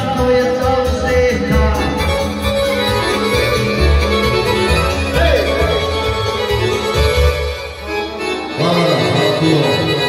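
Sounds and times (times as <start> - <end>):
live band playing dance music: 0.0 - 10.0.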